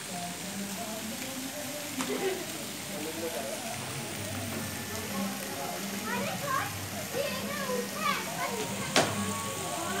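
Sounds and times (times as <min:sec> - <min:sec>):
voices chattering: 0:01.5 - 0:10.0.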